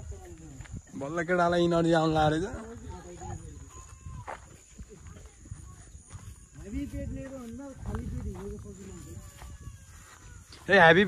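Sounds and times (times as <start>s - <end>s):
faint voices: 0.0s - 11.0s
footsteps on grass: 0.0s - 11.0s.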